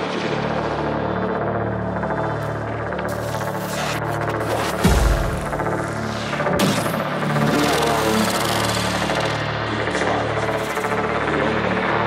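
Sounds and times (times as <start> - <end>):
electronic synth texture: 3.2 - 11.2
pulsing low bass tones: 4.7 - 12.0.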